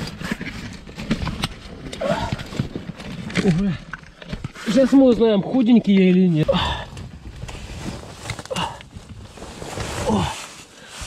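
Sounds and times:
jacket scraping against rock: 0:00.0 - 0:05.4, 0:07.1 - 0:11.0.

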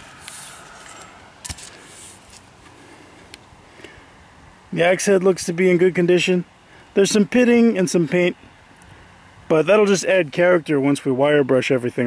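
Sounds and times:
low outdoor hiss: 0:00.0 - 0:12.0.

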